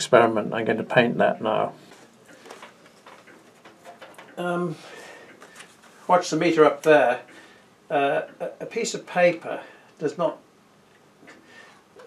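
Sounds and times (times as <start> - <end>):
faint clicks and rustles: 1.8 - 7.6.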